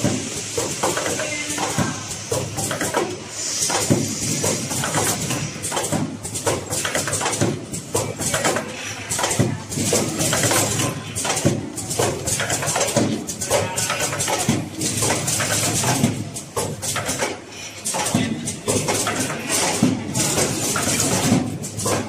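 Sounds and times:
packaging machine clattering: 3.8s - 22.0s.

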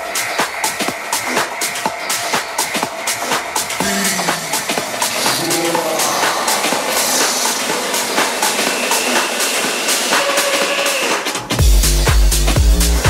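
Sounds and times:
hissing noise wash: 0.0s - 11.5s.

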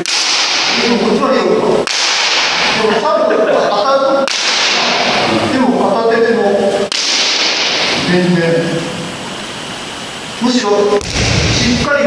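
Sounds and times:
bamboo sword strikes cracking: 0.0s - 0.8s, 1.8s - 2.7s, 4.3s - 5.0s, 6.9s - 7.9s.

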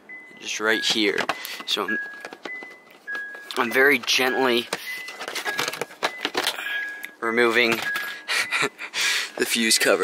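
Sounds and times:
plastic cover clicks and rattles: 0.8s - 6.6s, 7.6s - 8.2s.

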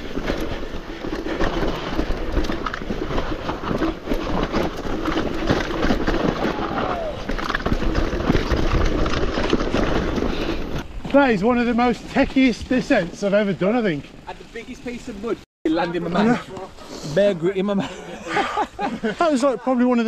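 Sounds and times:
mountain bike rattling and clattering: 0.0s - 16.3s.

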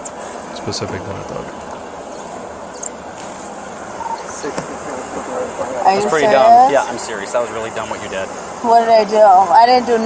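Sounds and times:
outdoor hiss and hum: 0.0s - 10.0s.

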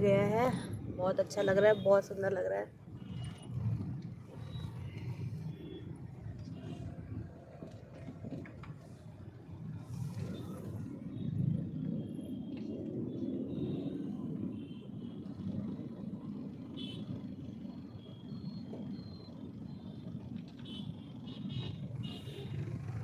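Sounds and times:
car interior rumble: 0.0s - 20.8s
faint traffic tones: 0.0s - 23.0s.

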